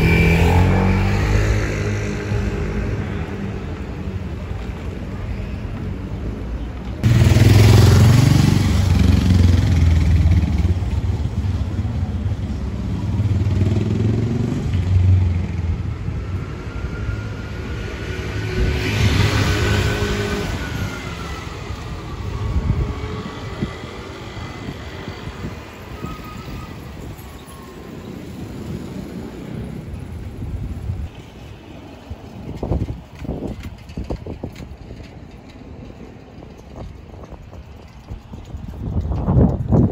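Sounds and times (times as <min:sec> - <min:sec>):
street noise: 0:00.0 - 0:39.9
trams rumbling on rails: 0:00.0 - 0:39.9.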